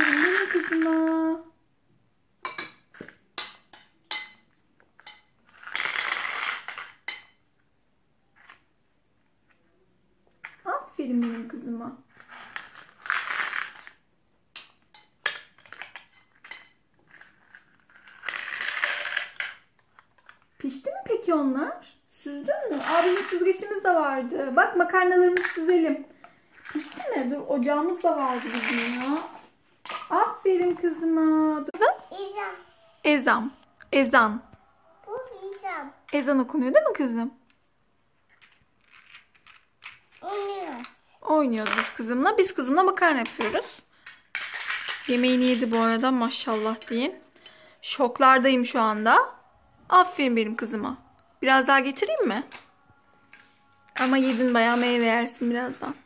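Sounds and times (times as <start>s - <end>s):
dry pasta and toy dishes clicking: 0.0s - 1.3s, 22.7s - 23.8s, 41.6s - 48.3s
pasta rattling in toy pot: 0.0s - 1.4s, 5.4s - 7.1s, 10.5s - 14.0s, 15.0s - 20.8s, 22.6s - 23.9s, 26.5s - 30.2s, 38.2s - 47.2s, 54.0s - 55.8s
drawn-out voiced sound: 31.8s - 33.6s.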